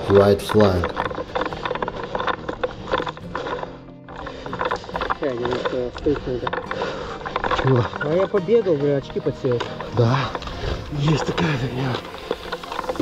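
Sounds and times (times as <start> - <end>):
people talking: 0.0 - 0.9, 5.2 - 6.4, 7.6 - 10.3, 10.9 - 12.0
music: 0.0 - 13.0.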